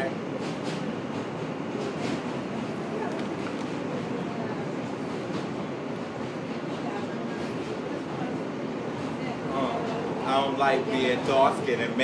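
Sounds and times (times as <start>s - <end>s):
subway car running noise: 0.0s - 12.0s.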